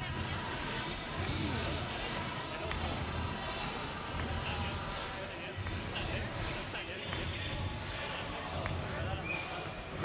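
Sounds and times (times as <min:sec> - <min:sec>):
indistinct voices and chatter: 0:00.0 - 0:10.0.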